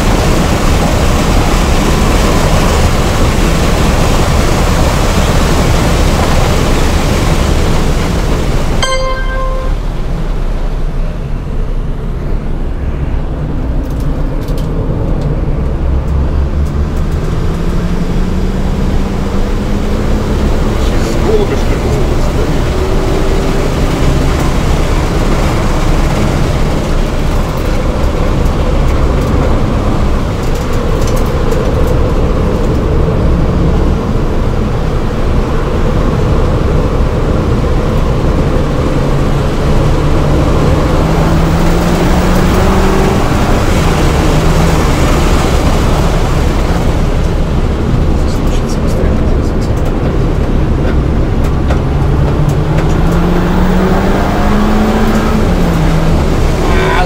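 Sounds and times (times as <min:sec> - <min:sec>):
road and wind noise: 0:00.0 - 0:57.0
car engine revving: 0:12.7 - 0:57.0.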